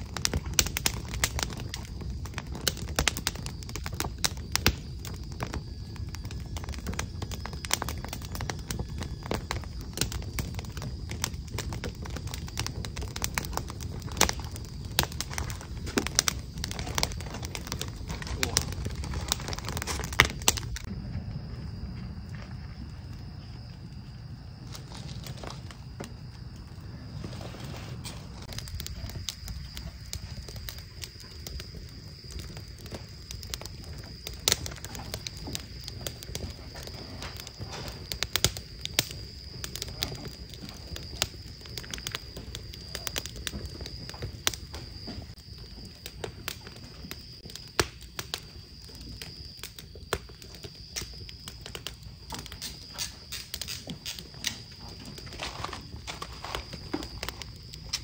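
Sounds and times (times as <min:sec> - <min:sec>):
burning logs popping and snapping: 0:00.0 - 0:58.0
low rumble of flames: 0:00.0 - 0:58.0.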